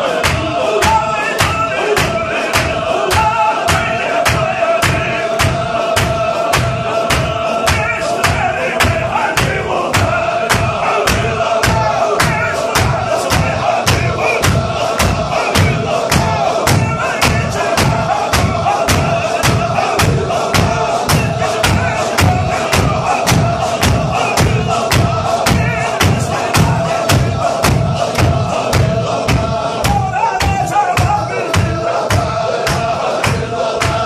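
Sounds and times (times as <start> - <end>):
men chanting together: 0.0 - 34.0
sharp hand claps: 0.2 - 34.0.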